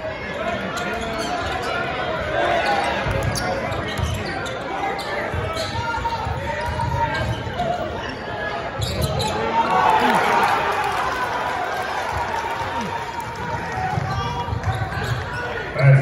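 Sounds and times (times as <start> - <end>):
spectators talking: 0.0 - 16.0.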